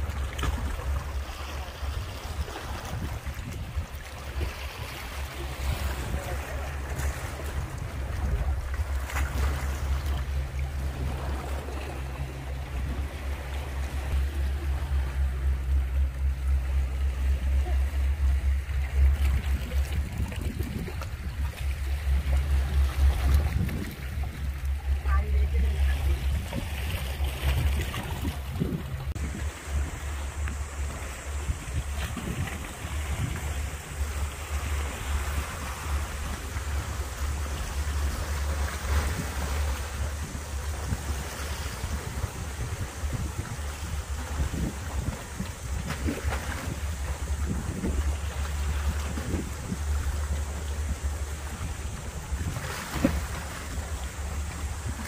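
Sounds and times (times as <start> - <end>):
sea washing against rocks: 0.0 - 55.0
wind buffeting microphone: 0.0 - 55.0.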